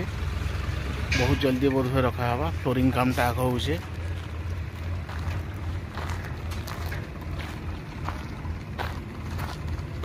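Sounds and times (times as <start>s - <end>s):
footsteps: 4.1s - 10.0s.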